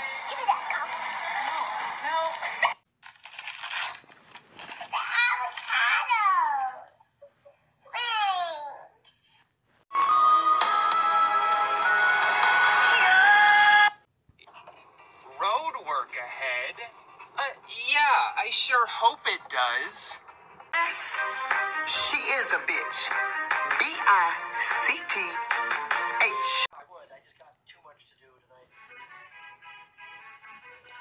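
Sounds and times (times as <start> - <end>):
music with rising tone: 20.2 - 22.1.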